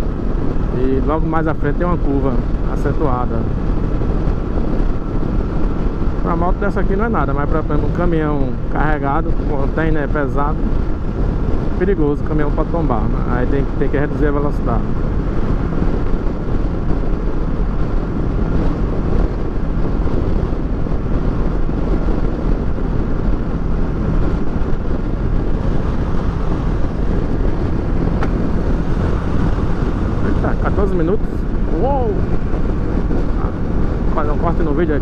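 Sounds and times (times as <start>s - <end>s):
motorcycle engine running: 0.0s - 35.0s
wind rushing on microphone: 0.0s - 35.0s.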